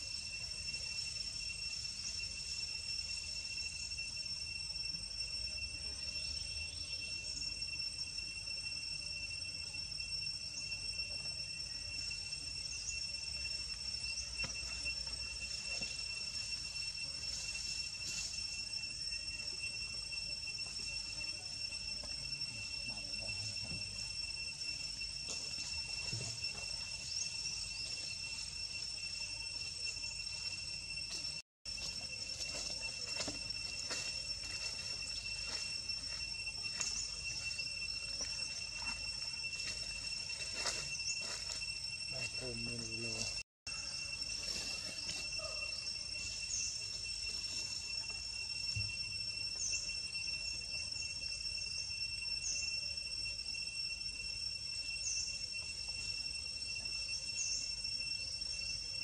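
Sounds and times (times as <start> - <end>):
high-pitched insect drone: 0.0 - 59.0.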